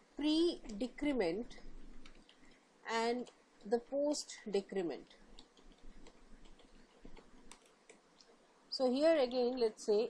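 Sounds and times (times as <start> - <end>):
computer keyboard typing: 5.3 - 8.0.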